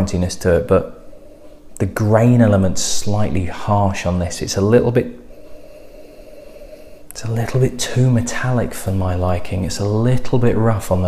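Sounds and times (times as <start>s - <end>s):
person inhaling through nose: 5.2s - 7.1s.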